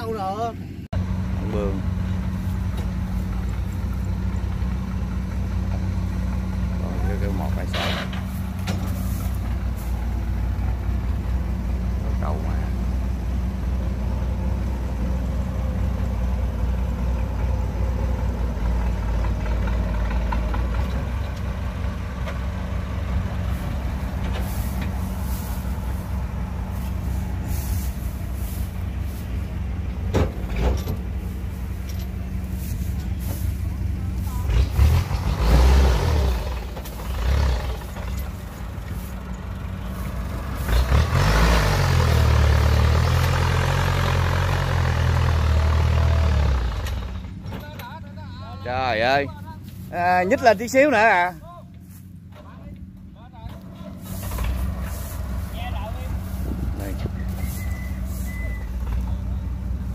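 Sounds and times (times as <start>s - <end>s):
tractor diesel engine labouring: 0.0s - 59.9s.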